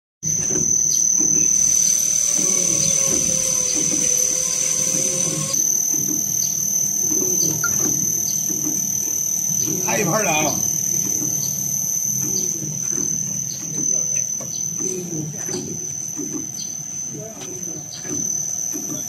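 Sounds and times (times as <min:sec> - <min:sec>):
machine high-pitched whine: 0:00.2 - 0:19.0.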